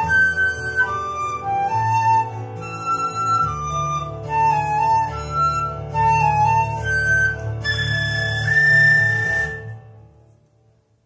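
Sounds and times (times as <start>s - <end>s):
flute notes: 0.0s - 10.0s.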